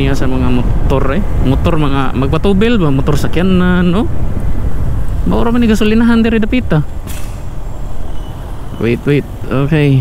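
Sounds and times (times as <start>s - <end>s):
motorcycle engine rumble: 0.0s - 10.0s
wind noise on microphone: 0.0s - 10.0s.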